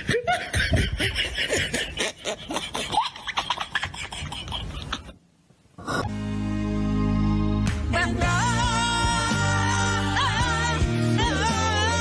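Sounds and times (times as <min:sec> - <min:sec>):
people laughing: 0:00.0 - 0:05.2.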